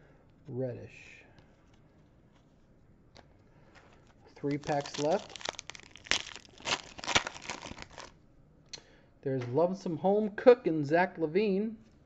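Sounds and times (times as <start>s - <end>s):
foil wrapper crinkling: 4.4s - 8.2s.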